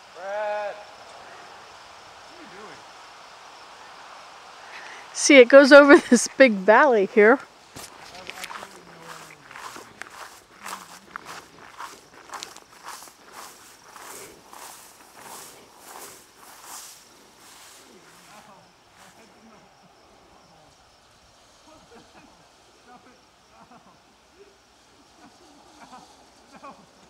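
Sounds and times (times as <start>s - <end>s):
footsteps swishing through tall grass: 7.6s - 19.3s.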